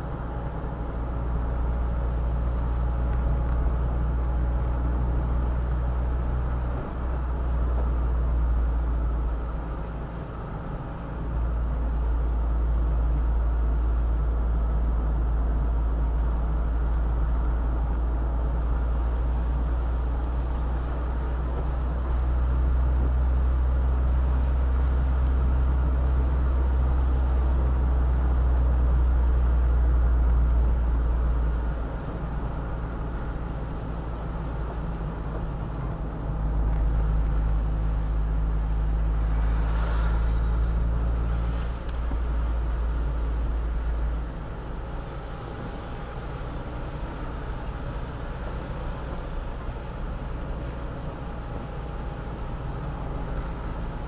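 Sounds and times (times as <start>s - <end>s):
car driving on wet road: 0.0s - 54.0s
brief hiss: 39.4s - 41.0s.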